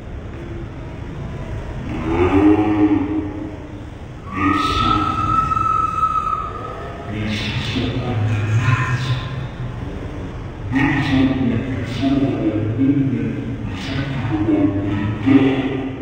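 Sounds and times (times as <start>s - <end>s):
man calling out: 1.9s - 3.5s, 4.2s - 6.4s
steady high tone: 1.9s - 10.0s.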